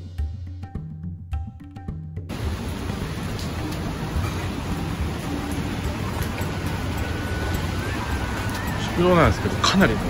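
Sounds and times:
rain on wet street: 2.3s - 10.0s.

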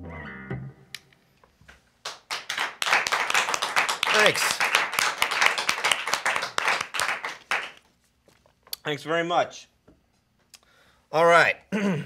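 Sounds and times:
audience applauding: 2.0s - 7.8s.

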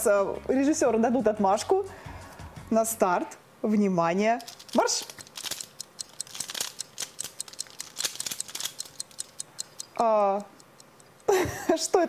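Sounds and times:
plastic puzzle clicks and rattles: 4.4s - 9.9s.

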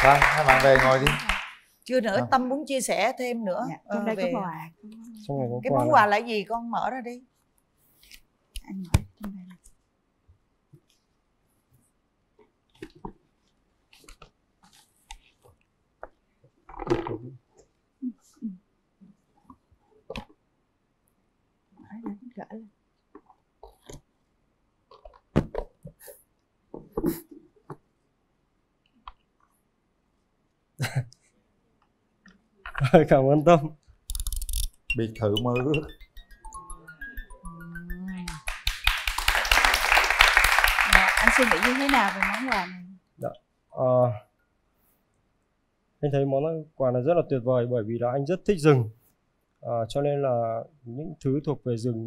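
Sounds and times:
audience applauding: 0.0s - 1.6s, 38.3s - 42.8s.

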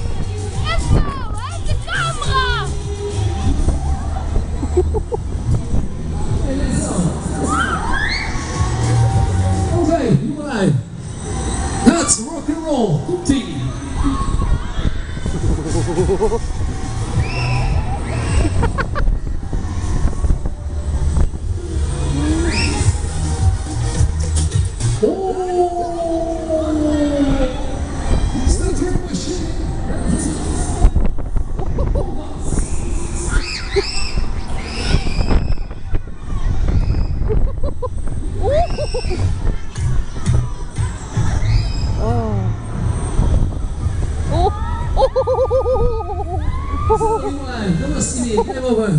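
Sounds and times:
fairground ride music: 0.0s - 48.9s
thrill ride heavy rumble: 0.0s - 48.9s
wind rushing over microphone: 0.0s - 48.9s.

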